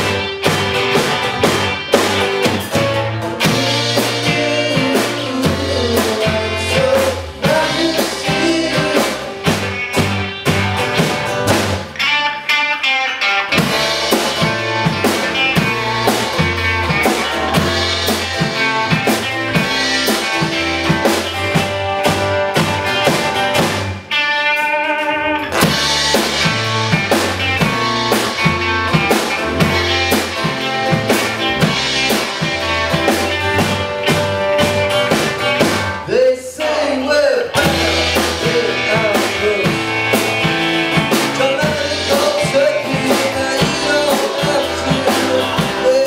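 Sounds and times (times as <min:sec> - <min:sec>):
drum kit beat: 0:00.0 - 0:12.6, 0:13.3 - 0:46.0
electric and acoustic guitars: 0:00.0 - 0:46.0
person singing: 0:03.4 - 0:09.6, 0:36.0 - 0:40.0, 0:41.1 - 0:46.0.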